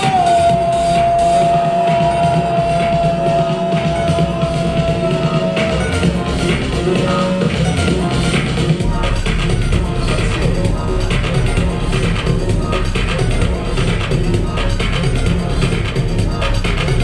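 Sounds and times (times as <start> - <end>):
live hip-hop music: 0.0 - 17.0.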